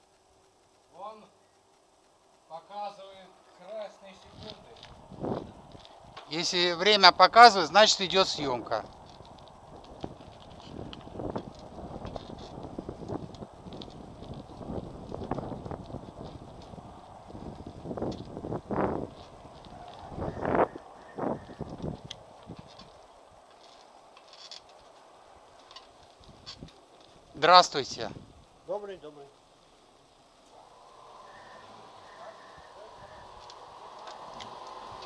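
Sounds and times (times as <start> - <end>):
bicycle tyre rumble: 3.3 - 35.0.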